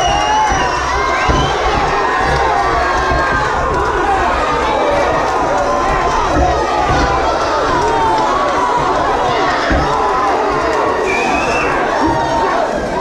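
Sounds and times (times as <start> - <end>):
crowd cheering and shouting: 0.0 - 13.0.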